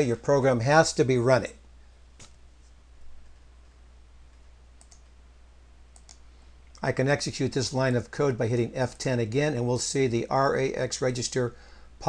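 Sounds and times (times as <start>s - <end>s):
low steady hum: 0.0s - 12.0s
computer mouse clicks: 4.3s - 5.2s, 5.9s - 6.2s.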